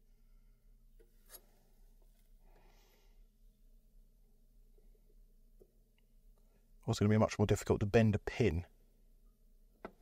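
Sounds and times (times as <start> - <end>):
low steady hum: 0.0 - 10.0
soft scrape: 1.1 - 3.0.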